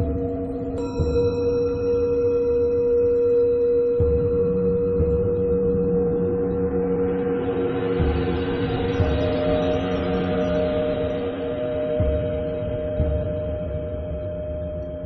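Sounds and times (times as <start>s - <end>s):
singing bowls ringing: 0.8s - 4.8s.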